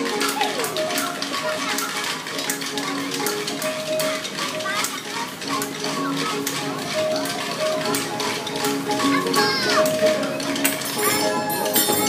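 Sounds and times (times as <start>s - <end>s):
children singing: 0.0s - 12.0s
hand percussion strokes: 0.0s - 12.0s
held musical notes: 0.0s - 12.0s.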